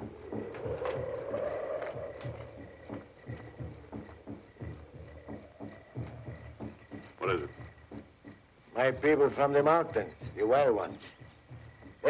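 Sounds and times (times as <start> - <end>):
distant low drums beating: 0.0 - 12.0.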